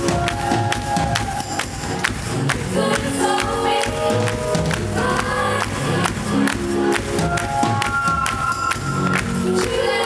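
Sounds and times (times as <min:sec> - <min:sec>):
live pop band music: 0:00.0 - 0:10.0.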